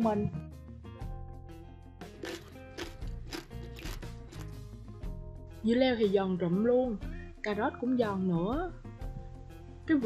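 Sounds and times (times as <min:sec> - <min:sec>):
soft background music: 0:00.0 - 0:10.0
person chewing crunchy food: 0:02.2 - 0:04.6.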